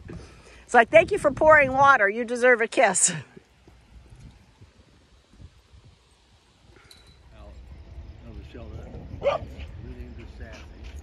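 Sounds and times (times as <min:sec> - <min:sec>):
dog barking: 0:09.2 - 0:09.7.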